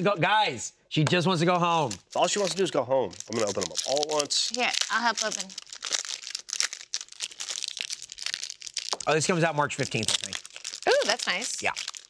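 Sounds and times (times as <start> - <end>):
plastic wrappers crinkling and tearing: 1.7 - 12.0.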